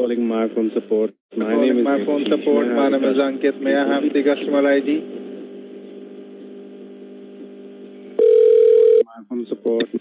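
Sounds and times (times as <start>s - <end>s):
telephone line hum: 2.5s - 9.1s
steady phone tone: 8.2s - 9.0s.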